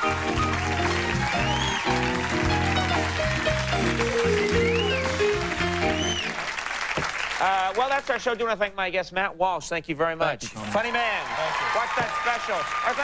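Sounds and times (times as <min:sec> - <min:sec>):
band playing keyboard and bass: 0:00.0 - 0:06.4
audience applause: 0:00.0 - 0:08.1, 0:10.8 - 0:13.0.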